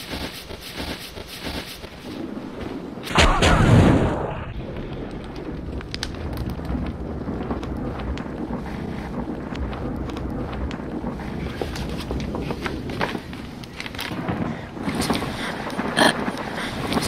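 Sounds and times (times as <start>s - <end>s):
storm wind rumble: 0.0s - 17.0s
loud bang: 3.1s - 4.8s
small clicks and crackles: 4.6s - 17.0s.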